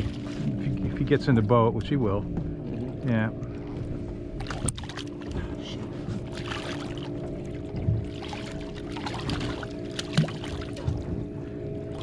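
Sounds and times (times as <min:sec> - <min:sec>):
steady hum: 0:00.0 - 0:12.0
fish thrashing and splashing: 0:04.4 - 0:11.3.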